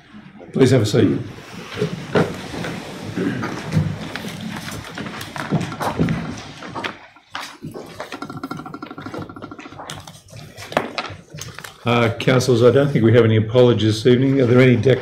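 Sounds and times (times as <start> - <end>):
chair movement and knocks: 1.6 - 11.3
paper handling: 3.2 - 8.6, 9.8 - 12.1.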